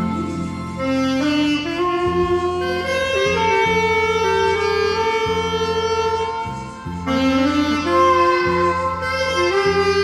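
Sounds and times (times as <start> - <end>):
low accompaniment: 0.0 - 10.0
saxophone melody: 0.0 - 10.0.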